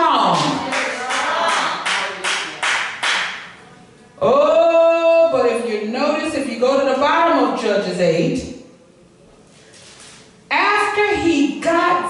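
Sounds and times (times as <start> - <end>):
hand clapping: 0.3 - 3.6.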